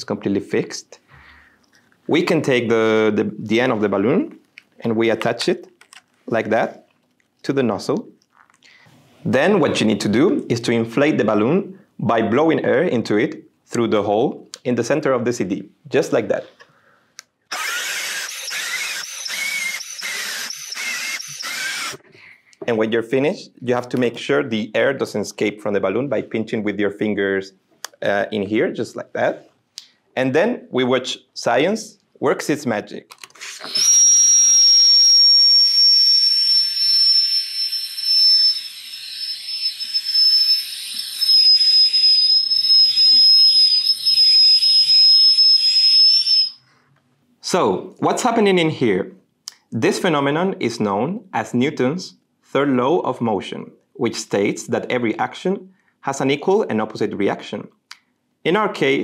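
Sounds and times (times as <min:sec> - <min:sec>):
squealing whistle: 0:17.5 - 0:22.0, 0:33.7 - 0:46.7.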